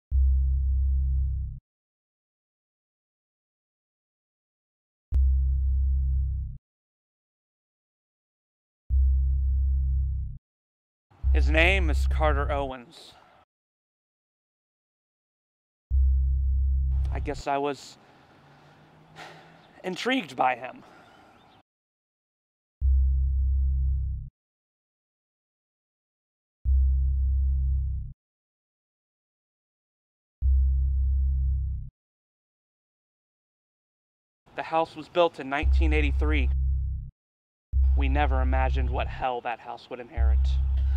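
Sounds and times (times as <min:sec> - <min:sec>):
deep bass tone: 0:00.1 - 0:01.6, 0:05.1 - 0:06.6, 0:08.9 - 0:10.4, 0:11.2 - 0:12.7, 0:15.9 - 0:17.5, 0:22.8 - 0:24.3, 0:26.7 - 0:28.2, 0:30.4 - 0:31.9, 0:35.6 - 0:37.1, 0:37.8 - 0:39.2, 0:40.2 - 0:40.9
deep synthesized drone: 0:11.2 - 0:12.6, 0:35.6 - 0:37.1, 0:37.8 - 0:39.1, 0:40.2 - 0:40.9.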